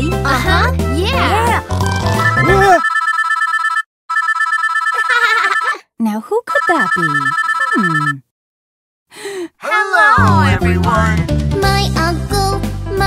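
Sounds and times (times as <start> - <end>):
electronic phone ringtone trilling: 2.2 - 5.8, 6.5 - 8.2
woman speaking: 5.0 - 8.2, 9.6 - 11.2.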